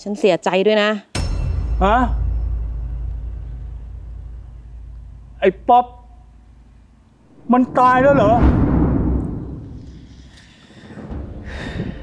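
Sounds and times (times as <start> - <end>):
deep low rumble: 3.3 - 10.4.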